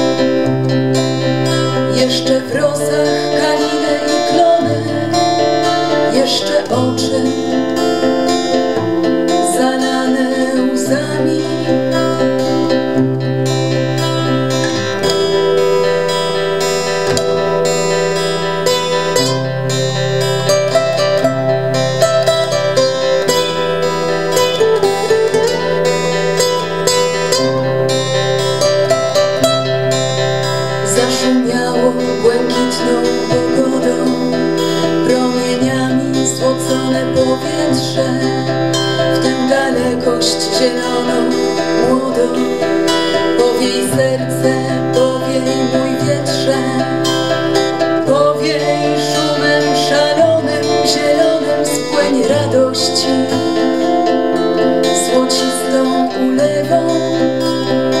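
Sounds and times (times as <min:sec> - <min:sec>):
classical guitar: 0:00.0 - 0:58.0
steel-string acoustic guitar: 0:00.0 - 0:58.0.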